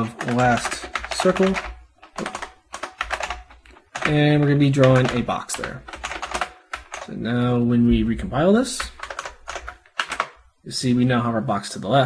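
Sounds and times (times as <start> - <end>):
typing on computer keyboard: 0.0 - 7.2, 8.8 - 10.4.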